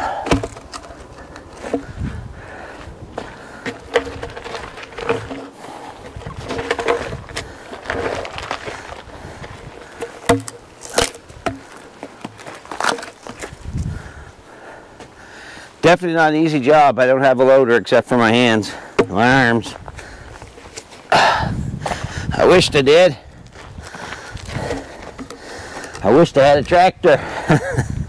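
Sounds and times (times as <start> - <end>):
log scraping over gravel: 0.1 - 14.2, 22.4 - 26.9
wood knocks: 0.2 - 0.9, 3.6 - 7.4, 9.9 - 13.4
footsteps: 0.3 - 13.9.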